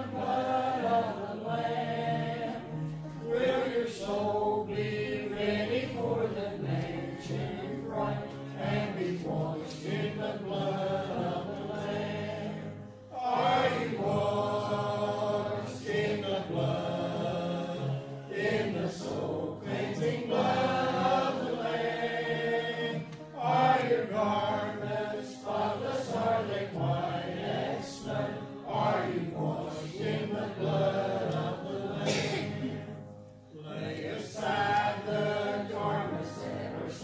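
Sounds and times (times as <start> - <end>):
congregation singing a hymn: 0.0 - 37.0.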